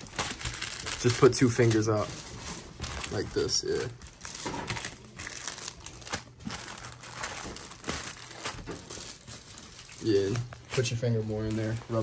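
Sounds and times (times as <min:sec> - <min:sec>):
crinkling and rustling handling noise: 0:00.0 - 0:12.0.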